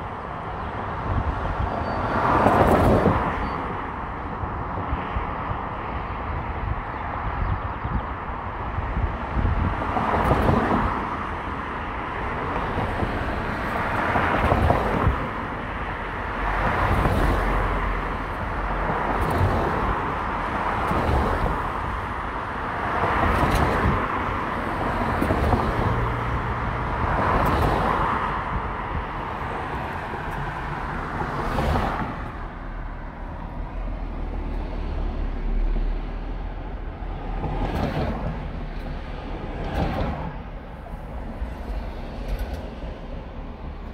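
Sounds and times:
road and tyre noise: 0.0s - 43.9s
vehicles passing close by: 0.0s - 43.9s.

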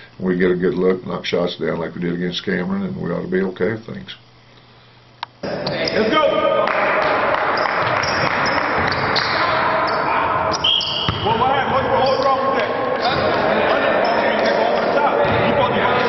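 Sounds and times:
players' voices and calls: 5.4s - 16.0s
basketballs bouncing on wood floor: 7.0s - 10.0s, 11.0s - 12.2s, 15.2s - 15.8s.

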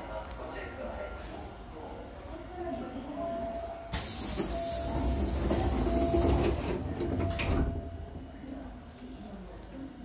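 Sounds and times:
air hiss from door engines: 3.9s - 6.6s.

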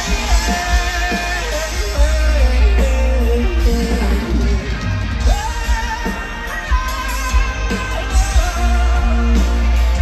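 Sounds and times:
live rock band playing: 0.0s - 10.0s
man singing lead vocals: 0.0s - 10.0s.

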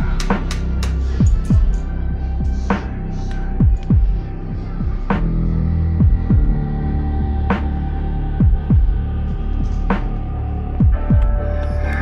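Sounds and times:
heartbeat-like low thumps: 0.0s - 11.6s
deep throbbing drone: 0.0s - 12.0s.

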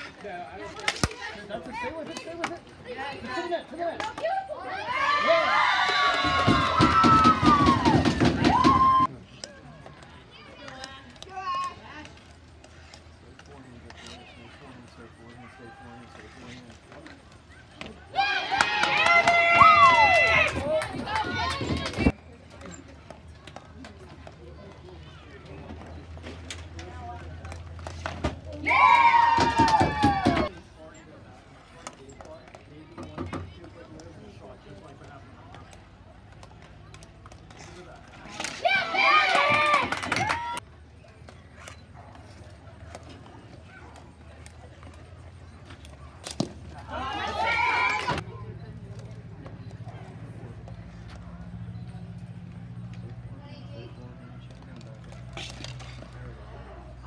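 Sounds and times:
distant voices: 4.0s - 57.0s.

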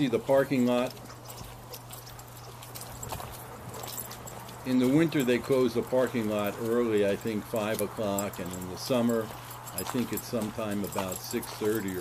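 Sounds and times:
footsteps on gravel: 0.0s - 12.0s
low steady hum: 0.0s - 12.0s.

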